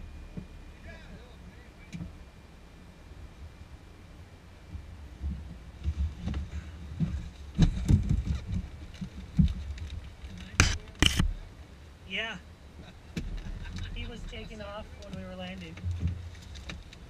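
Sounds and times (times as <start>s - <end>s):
loud crackling rustles: 5.3s - 11.4s, 14.9s - 17.0s.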